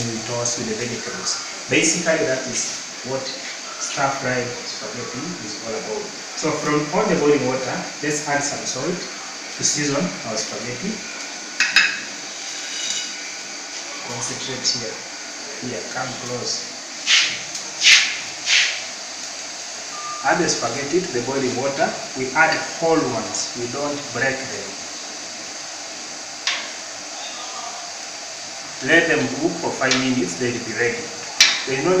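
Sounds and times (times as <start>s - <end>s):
water boiling in a pan: 0.0s - 32.0s
fork striking a metal pan: 31.4s - 31.7s.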